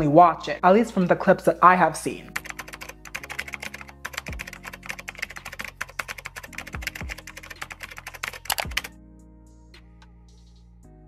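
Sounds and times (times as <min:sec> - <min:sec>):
keyboard typing: 0:02.3 - 0:08.9.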